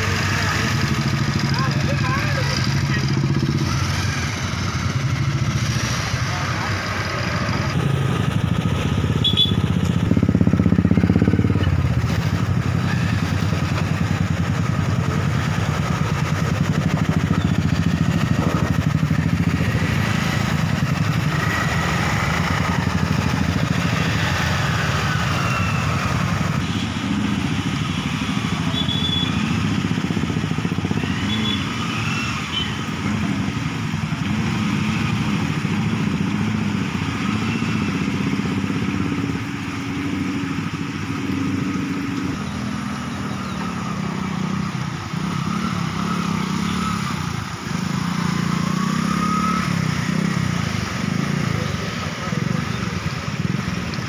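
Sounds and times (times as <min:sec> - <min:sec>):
motorcycle engines running slowly: 0:00.0 - 0:54.0.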